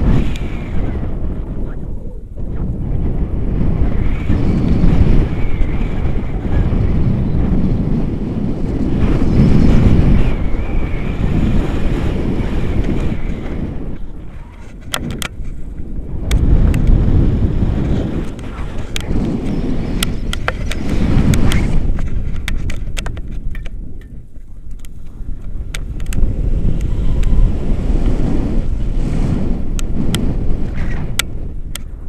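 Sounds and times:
wind rumbling on microphone: 0.0s - 32.0s.

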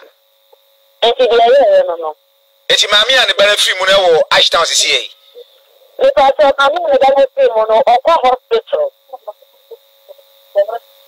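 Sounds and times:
steady low hum: 0.0s - 11.0s
person speaking: 2.7s - 5.4s.

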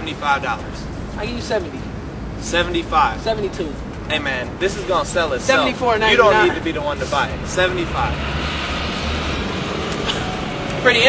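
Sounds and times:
outdoor background rumble and hiss: 0.0s - 11.0s.

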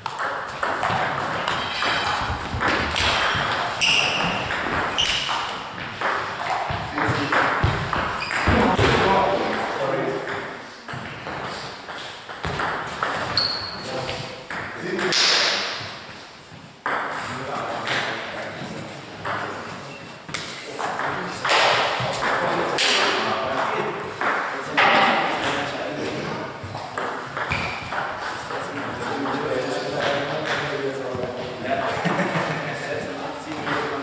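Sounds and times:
table tennis balls clicking: 0.0s - 8.9s
people talking: 6.4s - 11.6s, 13.8s - 15.7s, 17.2s - 27.6s, 28.4s - 34.0s.

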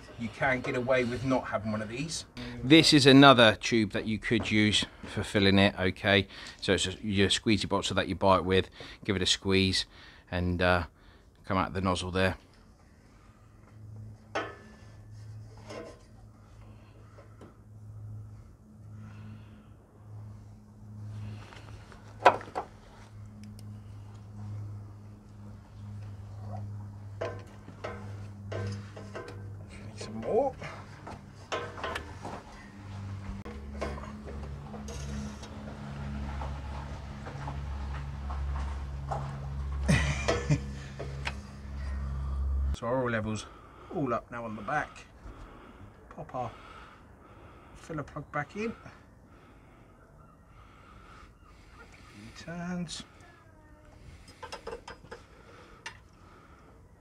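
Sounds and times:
soft background music: 22.7s - 42.7s.

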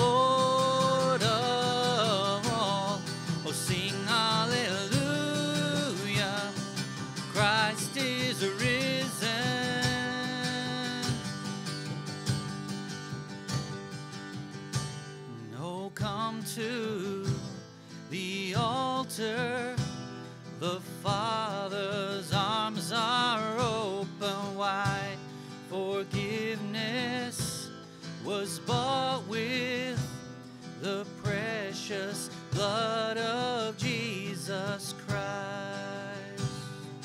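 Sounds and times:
person singing with vibrato: 0.0s - 11.5s, 20.6s - 37.0s
acoustic guitar strumming: 0.0s - 37.0s.

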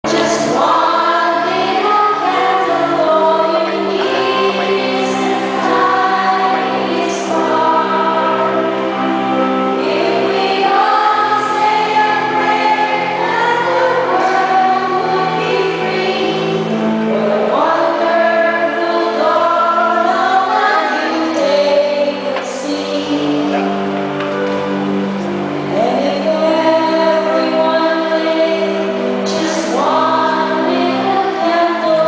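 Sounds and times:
choir singing a hymn: 0.0s - 32.0s.

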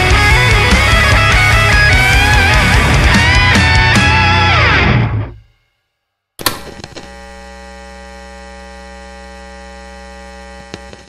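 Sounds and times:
sharp click: 6.4s - 7.1s
electrical mains hum: 6.4s - 11.0s.

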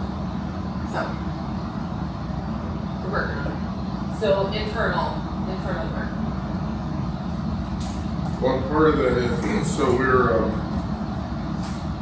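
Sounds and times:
low rumble of room noise: 0.0s - 12.0s.

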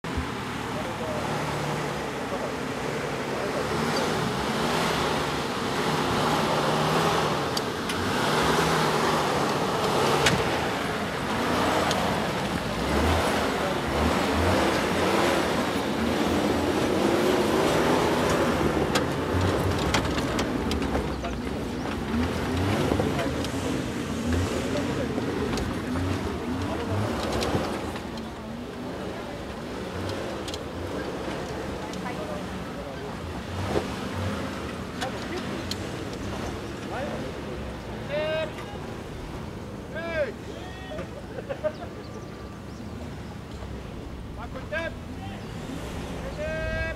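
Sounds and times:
engine running at low revs: 0.0s - 40.0s, 41.1s - 46.9s
voices: 0.0s - 46.9s.

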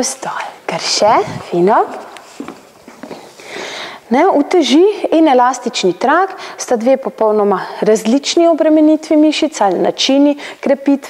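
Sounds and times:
footsteps on wooden floor: 1.2s - 3.3s
breathy hiss: 3.1s - 4.1s.

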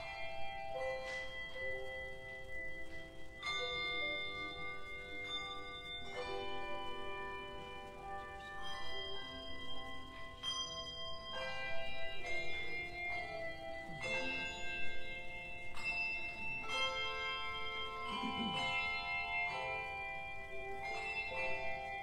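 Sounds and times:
tuned bells playing slow melody: 0.0s - 22.0s.

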